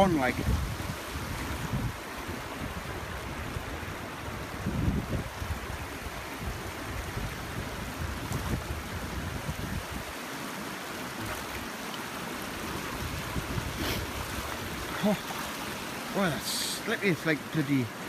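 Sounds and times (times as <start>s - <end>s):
wind rumbling on microphone: 0.0s - 10.2s, 12.4s - 15.0s
stony river running: 0.0s - 18.0s.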